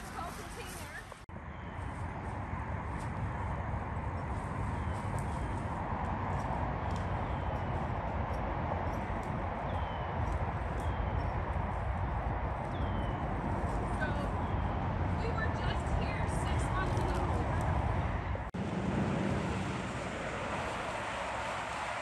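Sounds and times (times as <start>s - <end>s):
highway traffic rumble: 0.0s - 22.0s
wind: 0.0s - 22.0s.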